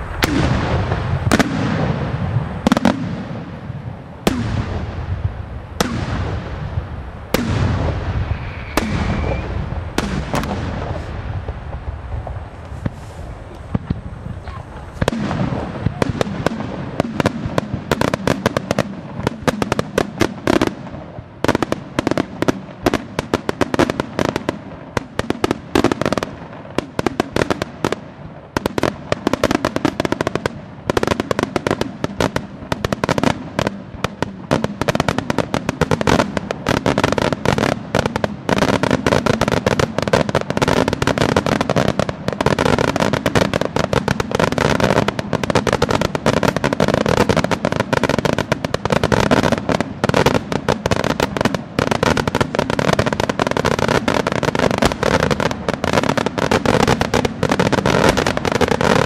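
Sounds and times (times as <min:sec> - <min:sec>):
rapid crackling of fireworks: 0:00.0 - 0:59.0.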